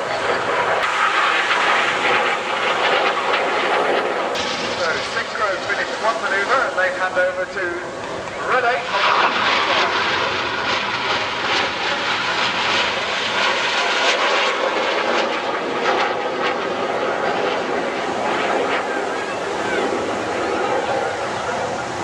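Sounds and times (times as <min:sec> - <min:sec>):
jet flying overhead: 0:00.0 - 0:22.0.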